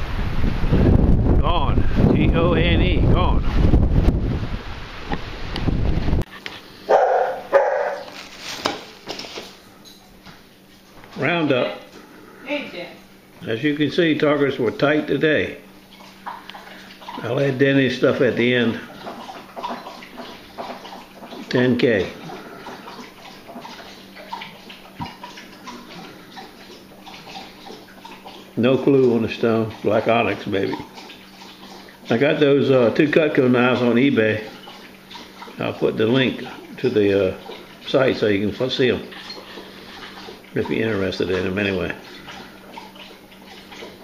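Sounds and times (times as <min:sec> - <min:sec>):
wind buffeting microphone: 0:00.0 - 0:06.3
dog barking: 0:06.9 - 0:08.1
water trickling: 0:06.9 - 0:44.0.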